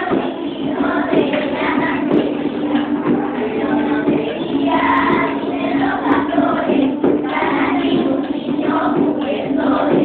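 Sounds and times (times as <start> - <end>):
children singing in chorus: 0.0 - 10.0.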